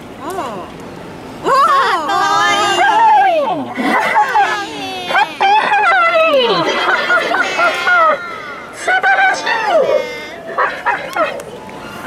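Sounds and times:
high-pitched voices exclaiming: 1.4s - 12.0s.

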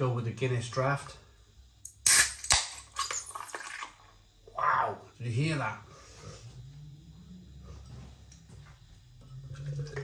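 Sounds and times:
can ring-pull crack: 1.9s - 4.0s.

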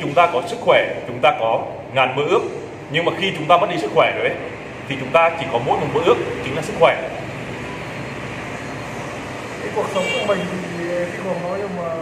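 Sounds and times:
background hum and hiss: 0.0s - 12.0s.

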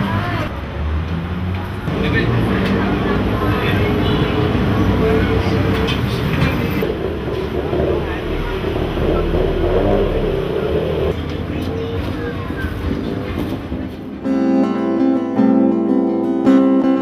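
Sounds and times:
low traffic rumble: 0.0s - 14.9s
voices chattering: 1.9s - 14.0s.

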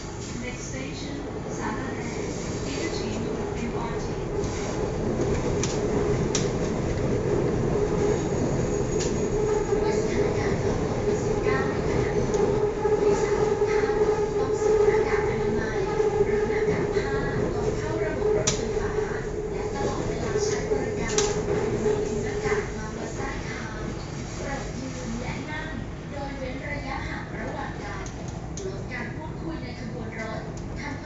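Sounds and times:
train rolling with a hum: 0.0s - 31.0s.

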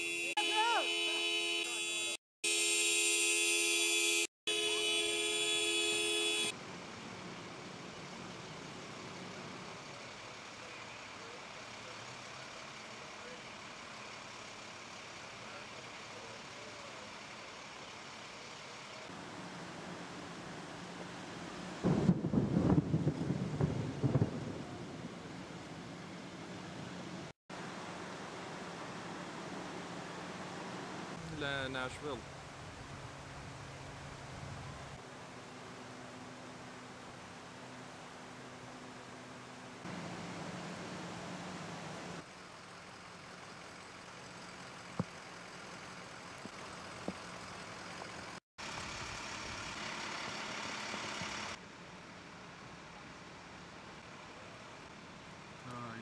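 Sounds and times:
car horn sounding: 0.0s - 6.6s.

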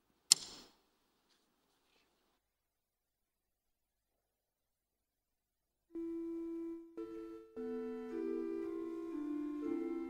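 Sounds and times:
church organ held notes: 6.0s - 10.0s.

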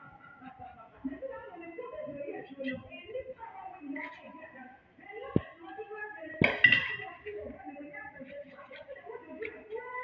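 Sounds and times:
voices murmuring: 0.0s - 10.0s.

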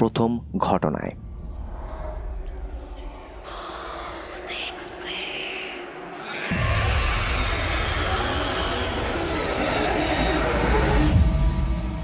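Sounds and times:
eerie low drone: 0.9s - 12.0s
breathy whispery hiss: 3.4s - 8.2s.

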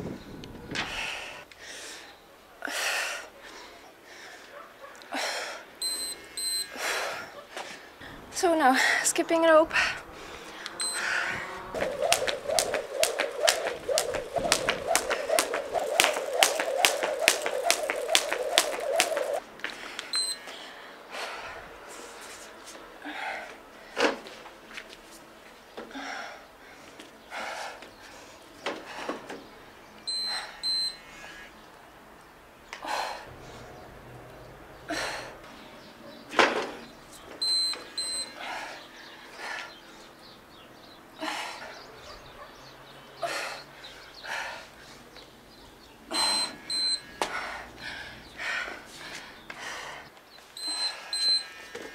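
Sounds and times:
short high timer beeps: 5.8s - 6.7s, 20.2s - 20.4s
steady hum: 9.7s - 19.5s
skipping rope slapping hard floor: 11.8s - 19.4s.

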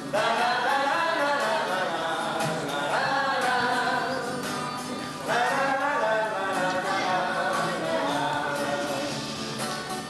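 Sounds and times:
voices singing held notes: 0.0s - 9.9s
acoustic guitar: 0.0s - 10.0s.

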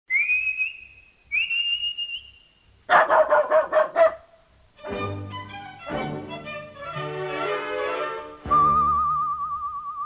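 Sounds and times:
rising whistled calls: 0.1s - 2.7s, 8.4s - 10.0s
dog barking: 2.9s - 4.4s.

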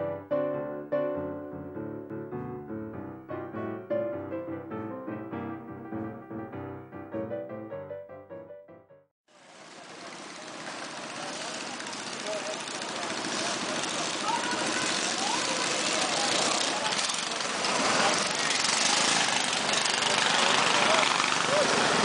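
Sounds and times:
mini bike engines idling: 9.4s - 22.0s
people's voices: 11.1s - 22.0s.

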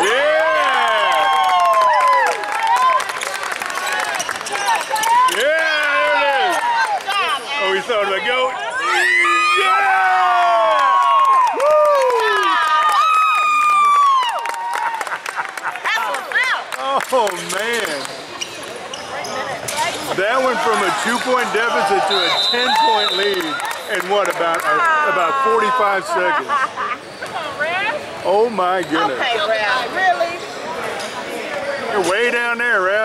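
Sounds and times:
crowd voices: 15.4s - 33.0s.

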